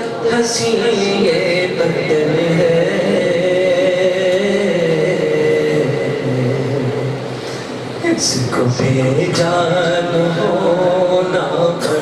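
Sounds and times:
man chanting into microphone: 0.0s - 7.4s, 8.0s - 12.0s.

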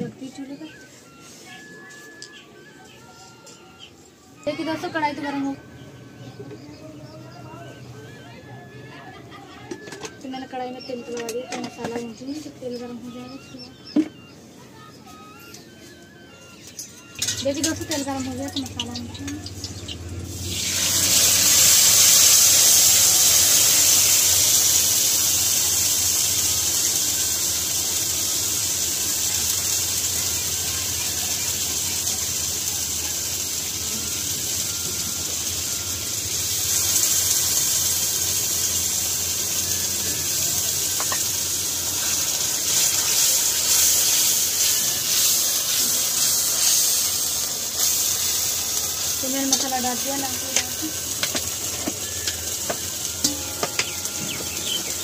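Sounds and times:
spices sizzling in hot oil: 16.6s - 55.0s.

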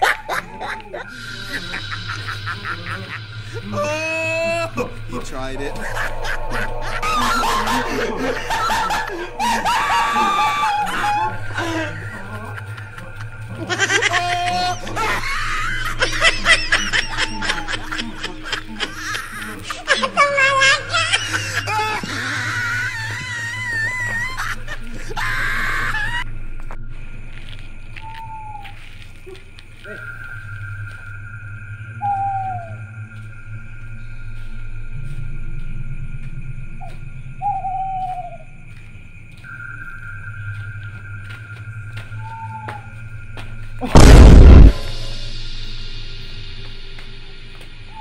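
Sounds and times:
high-pitched rapid laughter: 0.0s - 4.7s, 5.8s - 26.2s
drawn-out hooting call: 0.0s - 26.2s, 28.0s - 33.2s, 37.4s - 38.7s, 39.5s - 43.3s
low steady drone: 0.0s - 48.0s
short rising chirp: 42.1s - 48.0s.

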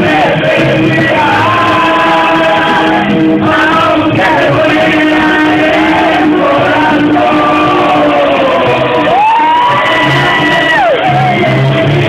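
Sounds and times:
backing track: 0.0s - 12.0s
man singing into microphone: 0.0s - 12.0s.

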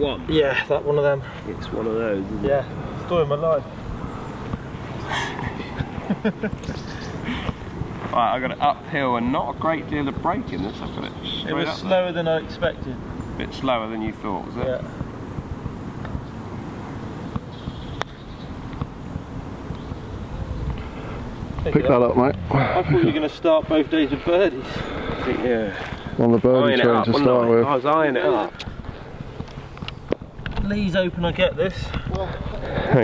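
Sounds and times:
wind rumble on microphone: 1.6s - 11.2s, 12.4s - 33.0s.

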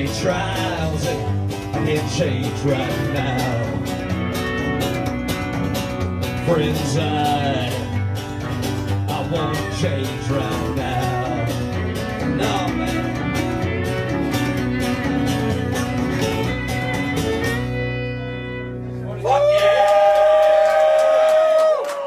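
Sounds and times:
country band playing: 0.0s - 20.4s.

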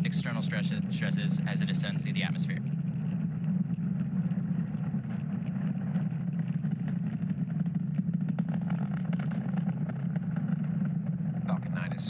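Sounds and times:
rocket engines rumbling: 0.0s - 12.0s.

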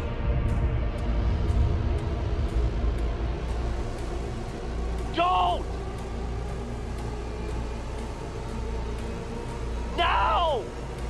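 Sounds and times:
sci-fi soundtrack drone: 0.0s - 11.0s.

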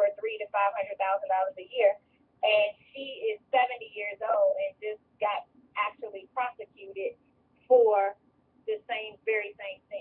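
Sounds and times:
woman speaking sing-song: 0.0s - 7.1s, 7.7s - 8.1s, 8.7s - 10.0s.

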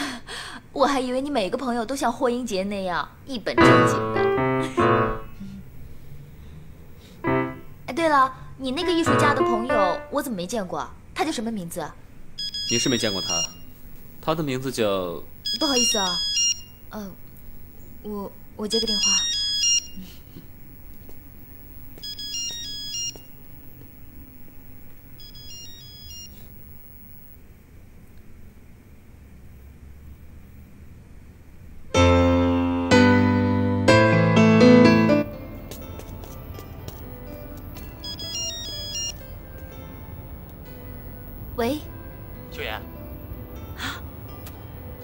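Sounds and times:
soft background music: 8.6s - 10.3s, 32.0s - 45.0s
mobile phone ringtone: 12.4s - 13.7s, 15.4s - 16.8s, 18.7s - 20.1s, 22.0s - 23.4s, 25.2s - 27.2s, 37.2s - 39.9s.

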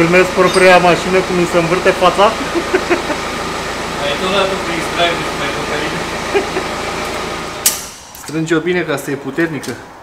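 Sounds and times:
fan whirring: 0.0s - 10.0s
sharp click: 7.6s - 8.4s.

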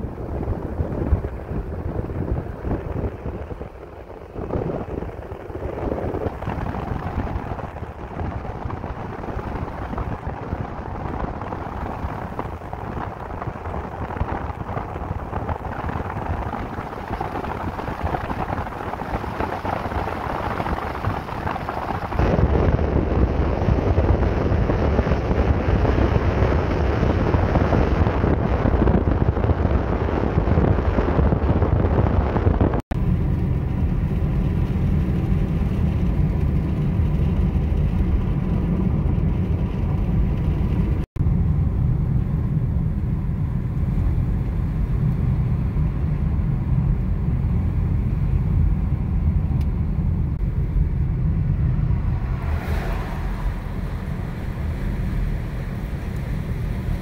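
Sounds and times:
car wind and road noise: 0.0s - 57.0s.

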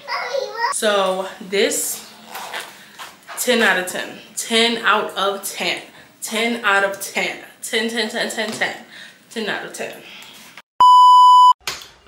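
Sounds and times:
high electronic beep: 10.8s - 11.6s.

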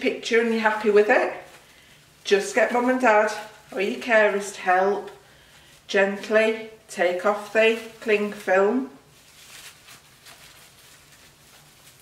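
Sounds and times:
cling film crinkling: 7.4s - 12.0s.

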